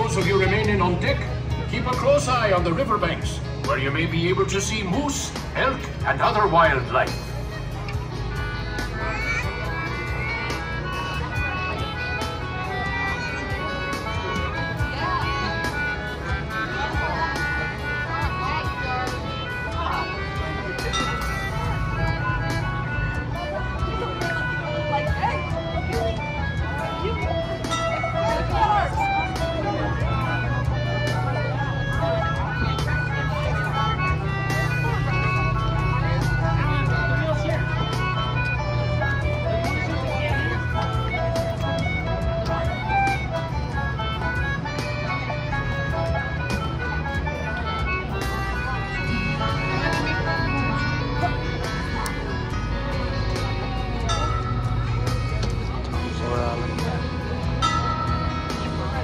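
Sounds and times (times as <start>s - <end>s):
continuous low hum: 0.0s - 59.0s
crowd chatter: 0.0s - 59.0s
instrumental background music: 0.0s - 59.0s.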